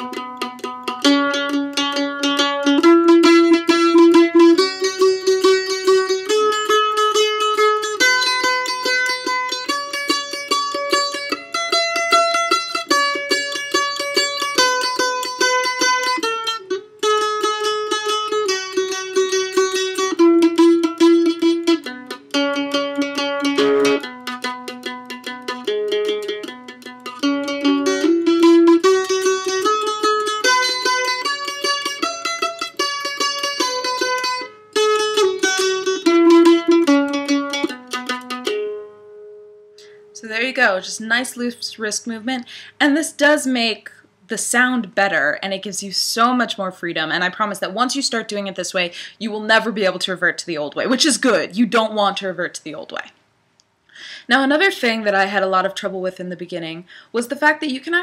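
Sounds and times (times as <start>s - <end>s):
mandolin tremolo picking: 0.0s - 53.1s, 54.4s - 58.0s.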